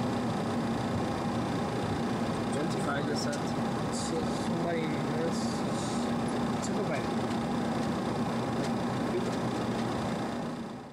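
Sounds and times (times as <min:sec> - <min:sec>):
ventilation and equipment hum: 0:00.0 - 0:10.9.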